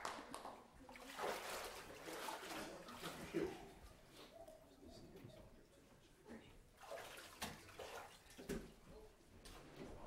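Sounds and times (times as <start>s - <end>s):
water splashing and sloshing: 0.8s - 3.8s, 6.8s - 8.8s.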